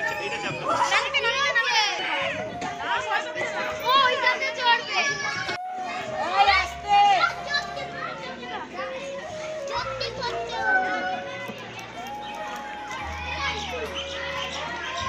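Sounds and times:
children calling and shouting: 0.0s - 15.0s.

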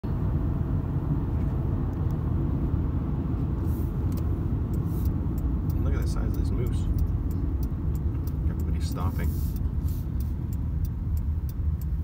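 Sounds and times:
vehicle engine and tyre rumble: 0.0s - 12.0s.

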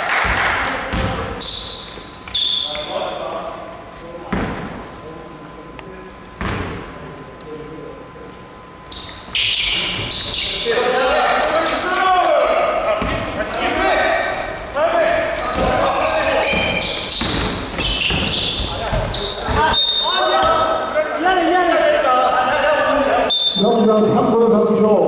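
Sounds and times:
basketball bouncing on wooden floor: 16.5s - 19.7s.

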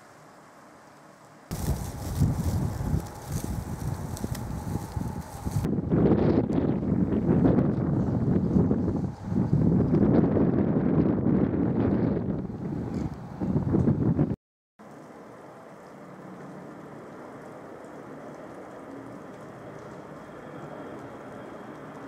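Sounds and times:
plastic sheeting flapping: 1.5s - 5.7s
wind buffeting microphone: 1.5s - 14.4s.

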